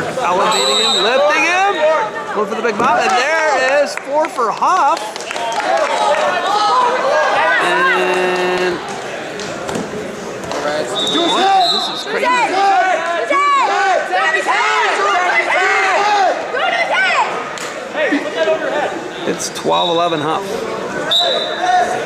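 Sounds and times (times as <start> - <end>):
echoing shouting voices: 10.9 - 17.5.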